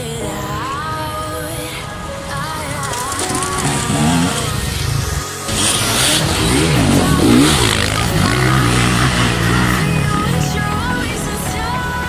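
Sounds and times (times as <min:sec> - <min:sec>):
motorcycle engines revving: 0:02.8 - 0:11.4.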